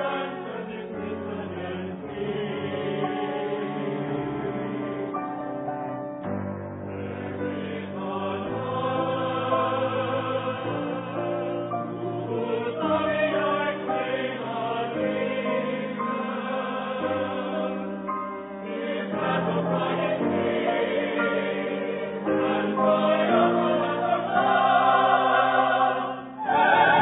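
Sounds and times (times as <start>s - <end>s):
mixed chorus singing: 0.0s - 5.5s, 6.8s - 27.0s.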